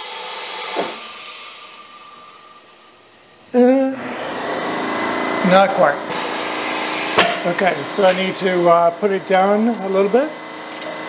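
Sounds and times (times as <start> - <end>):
compressed air hissing: 0.0 - 8.8.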